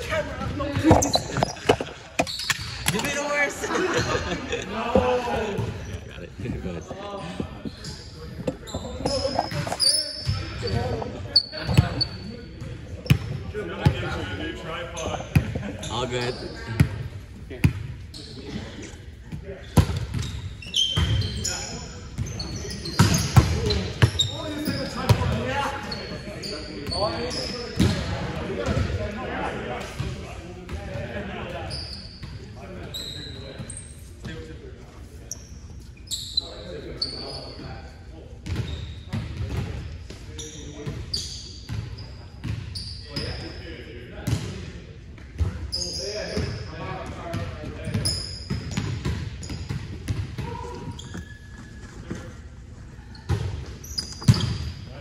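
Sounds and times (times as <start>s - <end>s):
players' indistinct voices: 0.0s - 55.0s
shoe squeaks: 0.5s - 2.9s, 7.4s - 13.2s, 20.1s - 25.2s, 25.8s - 27.8s, 31.7s - 34.2s, 35.2s - 37.6s, 40.4s - 43.6s, 45.7s - 46.6s, 50.5s - 52.3s, 52.9s - 54.9s.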